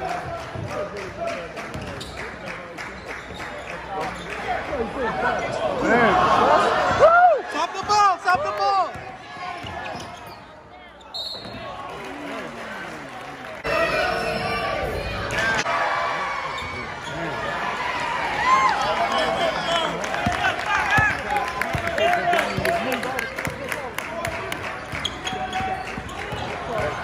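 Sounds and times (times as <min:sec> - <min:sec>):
crowd and player voices: 0:00.0 - 0:27.0
sneakers squeaking: 0:01.7 - 0:02.3, 0:03.0 - 0:04.5, 0:08.2 - 0:11.8, 0:16.5 - 0:17.4, 0:21.8 - 0:22.8, 0:24.7 - 0:27.0.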